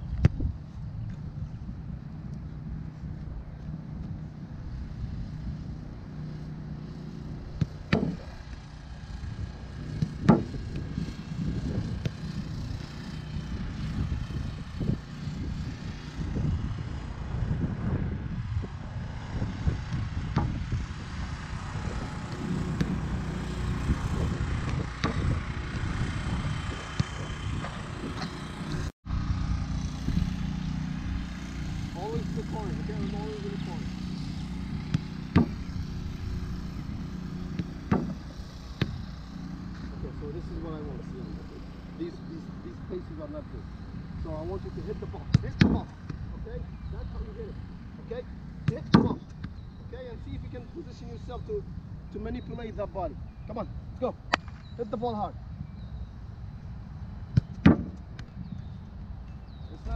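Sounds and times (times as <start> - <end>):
soccer ball kicks: 0.0 - 1.2, 7.5 - 8.4, 9.8 - 11.0, 11.6 - 12.3, 22.0 - 23.3, 24.2 - 25.4, 26.7 - 28.4, 34.5 - 36.2, 37.1 - 39.1, 45.0 - 46.4, 48.6 - 49.6, 57.3 - 58.4.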